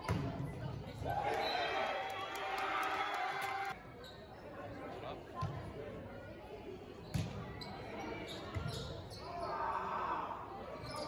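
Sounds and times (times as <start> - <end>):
voices shouting and cheering: 0.9 - 3.8.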